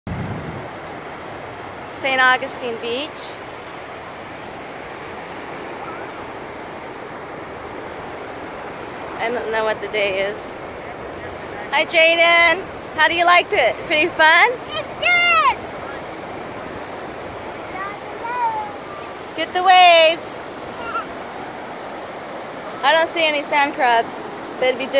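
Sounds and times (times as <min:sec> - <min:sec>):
ocean surf breaking: 0:00.1 - 0:24.9.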